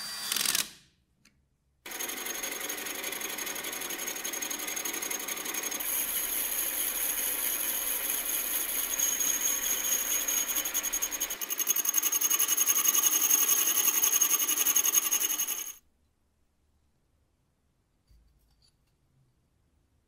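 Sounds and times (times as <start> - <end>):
diamond dresser scraping grinding wheel: 5.8 - 15.8.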